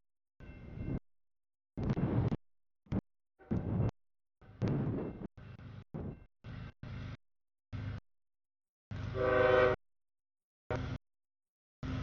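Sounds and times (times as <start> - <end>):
locomotive air horn: 9.1 - 9.8.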